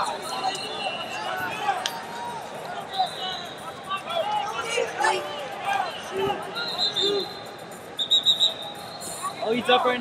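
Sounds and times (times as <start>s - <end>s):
referee's whistle chirps: 5.8s - 9.3s
faint high whistle tone: 5.8s - 9.4s.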